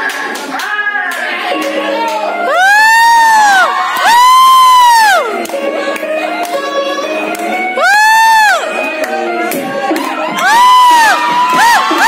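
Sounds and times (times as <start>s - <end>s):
audience cheering: 0.0s - 5.4s, 9.9s - 12.0s
dance music: 0.0s - 12.0s
high-pitched whoops: 2.0s - 5.4s, 7.0s - 8.9s, 9.5s - 12.0s.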